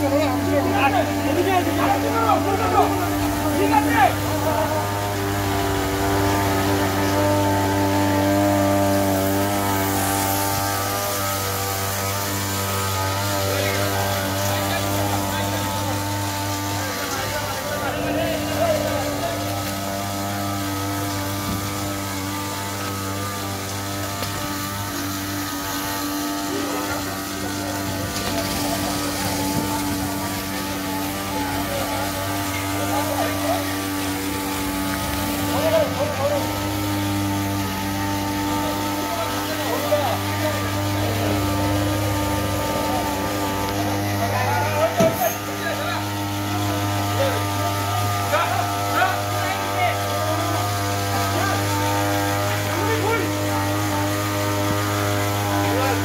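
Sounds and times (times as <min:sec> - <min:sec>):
people's voices: 0:00.0 - 0:56.0
small engine running: 0:00.0 - 0:56.0.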